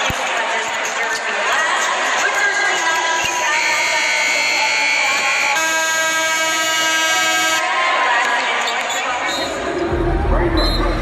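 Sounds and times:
loud harsh buzzer: 0:03.4 - 0:07.6.

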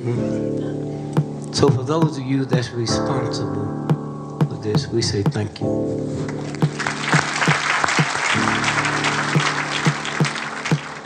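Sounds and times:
soft instrumental music: 0:00.0 - 0:11.0
audience applause: 0:06.4 - 0:11.0.

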